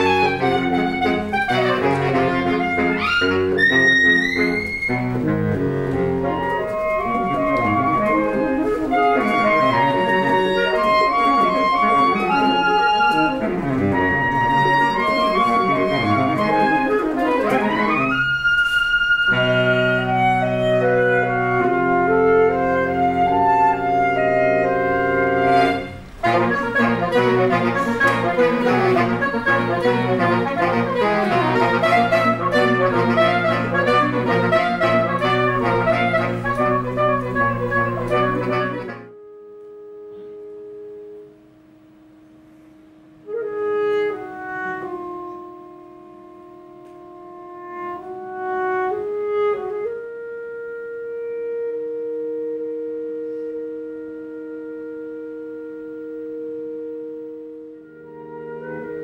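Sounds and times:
saxophone quartet playing: 0:00.0 - 0:59.0.

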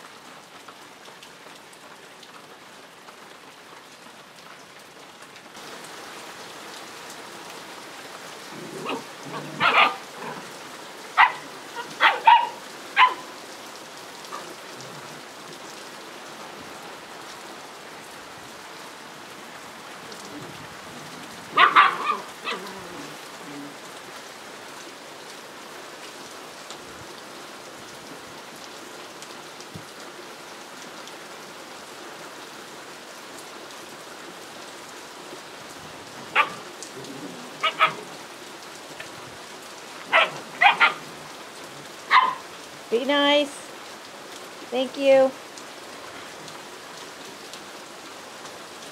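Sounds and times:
puppies barking: 0:08.6 - 0:13.4, 0:21.5 - 0:23.1, 0:36.3 - 0:36.7, 0:37.5 - 0:38.2, 0:40.1 - 0:41.2, 0:41.9 - 0:42.6.

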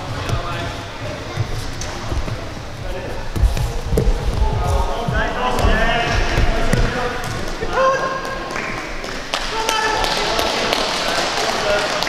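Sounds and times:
voices in a large hall: 0:00.0 - 0:12.0.

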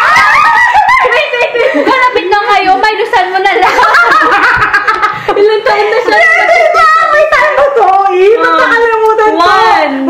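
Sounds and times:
women laughing: 0:00.0 - 0:02.4, 0:03.5 - 0:08.8.

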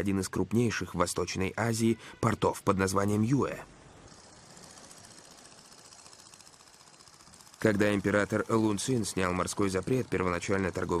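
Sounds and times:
motorboat engine chugging: 0:04.1 - 0:11.0.

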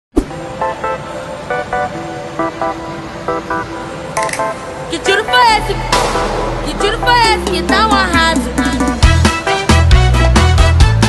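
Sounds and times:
steady background noise: 0:00.2 - 0:10.0
sharp click: 0:04.2 - 0:04.5.

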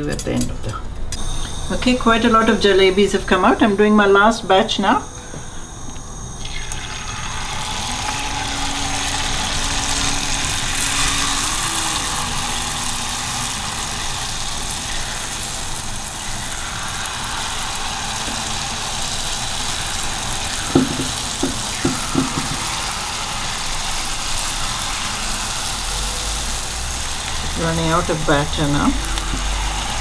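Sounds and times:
batter sizzling in hot oil: 0:01.2 - 0:30.0.

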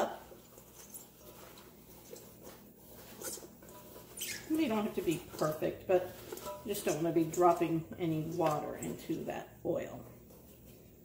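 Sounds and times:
paper towels rustling: 0:00.0 - 0:11.0.

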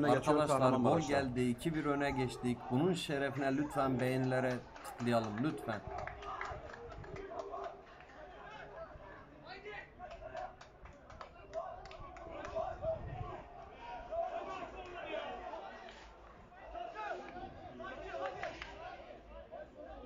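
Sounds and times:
people shouting and talking: 0:00.0 - 0:20.0.

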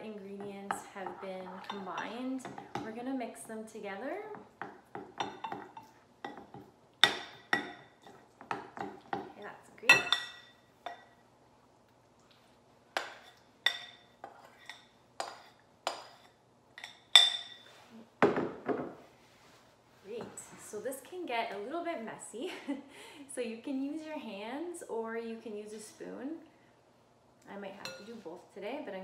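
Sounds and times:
metal spoon clinking on glass bowl: 0:09.9 - 0:11.1.

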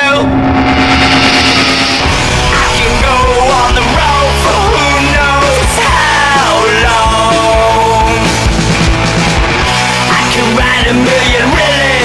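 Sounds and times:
distorted punk rock chord: 0:00.0 - 0:12.0.

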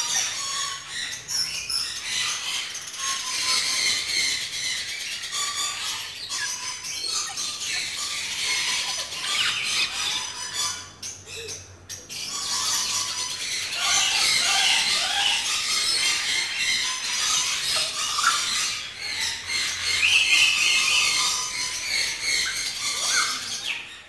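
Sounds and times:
lories squealing and chattering: 0:00.0 - 0:24.0.

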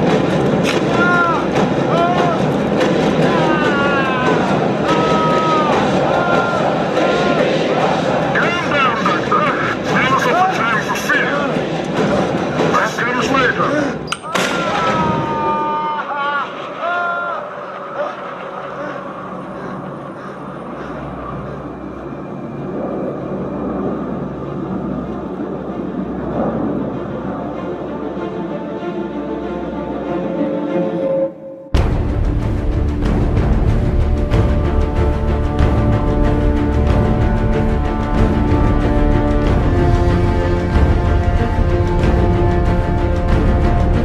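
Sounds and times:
film score music: 0:00.0 - 0:44.0
voices shouting: 0:00.8 - 0:11.8, 0:14.2 - 0:21.6
low rumble: 0:16.2 - 0:29.9, 0:31.8 - 0:44.0.

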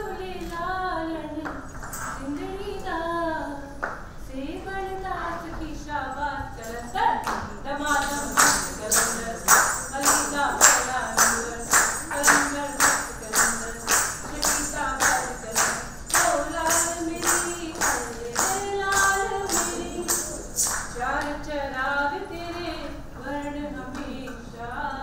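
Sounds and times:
woman singing: 0:00.0 - 0:25.0
sharp clap-like strikes: 0:07.2 - 0:21.3.

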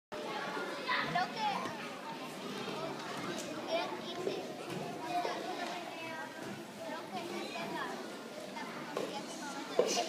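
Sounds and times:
children chattering: 0:00.2 - 0:10.0.

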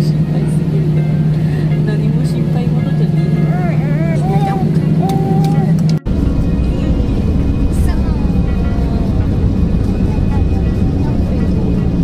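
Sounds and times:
jet engines drone in cabin: 0:00.0 - 0:12.0
low hum: 0:00.0 - 0:12.0.

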